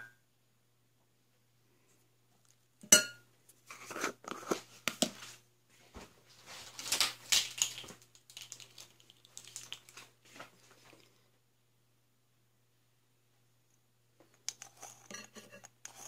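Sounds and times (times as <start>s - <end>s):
fork clinking against glass bowl: 2.9s - 3.2s
fork scraping in bowl: 14.6s - 16.0s.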